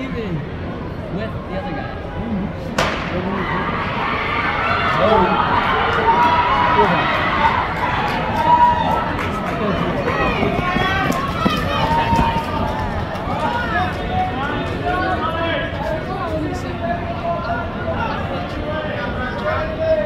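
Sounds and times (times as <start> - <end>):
indistinct chatter and calls: 1.9 - 20.0.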